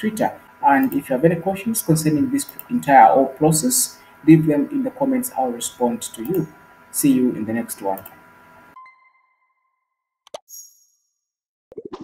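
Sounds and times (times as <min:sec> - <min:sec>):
bell-like tone: 0:08.8 - 0:11.1.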